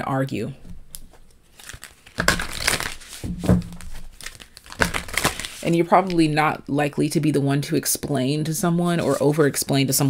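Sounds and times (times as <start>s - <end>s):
rustling and crinkling handling: 0.9s - 6.4s.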